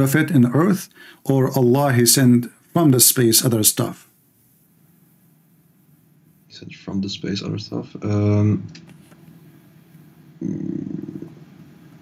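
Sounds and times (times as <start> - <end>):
person saying uhh: 10.4 - 11.4.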